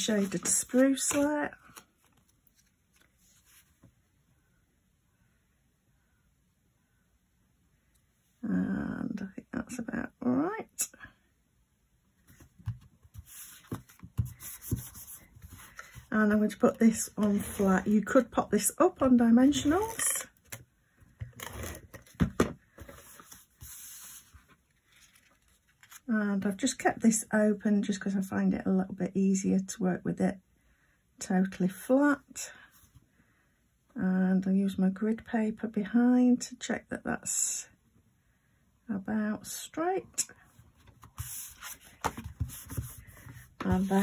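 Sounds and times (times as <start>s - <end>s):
papery scuffs of card: 13.1s - 16.1s, 40.9s - 44.0s.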